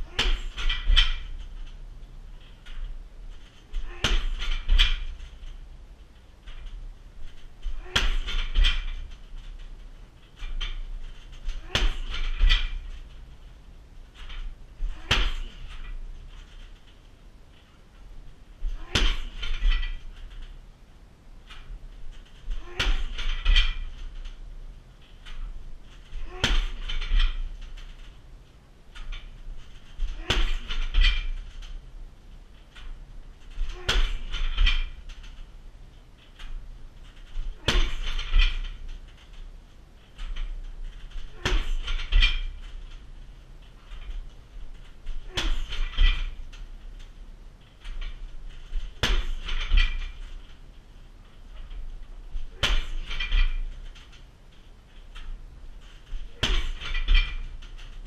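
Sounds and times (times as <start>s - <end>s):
kicks thudding on punching bag: 0.0s - 1.3s, 3.8s - 5.1s, 7.7s - 9.0s, 11.4s - 12.9s, 14.8s - 16.0s, 18.6s - 20.1s, 22.5s - 23.9s, 26.2s - 27.5s, 30.0s - 31.4s, 33.6s - 34.9s, 37.4s - 38.7s, 41.2s - 42.5s, 45.1s - 46.4s, 48.8s - 50.2s, 52.4s - 53.7s, 56.2s - 57.4s
punching bag and stand rattling: 0.0s - 58.0s.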